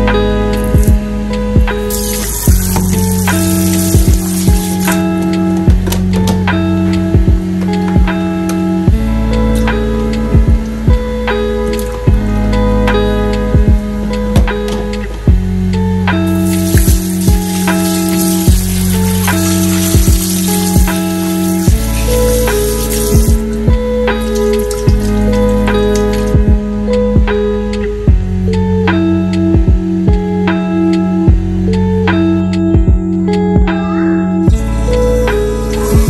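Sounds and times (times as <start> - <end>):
background music with steady beat: 0.0 - 36.0
tap water pouring into pot: 1.9 - 5.1, 16.3 - 26.3.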